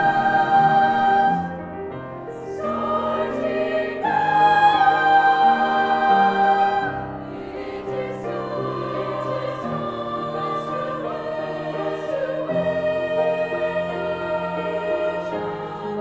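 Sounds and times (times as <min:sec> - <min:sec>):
women's choir singing in harmony: 0:00.0 - 0:16.0.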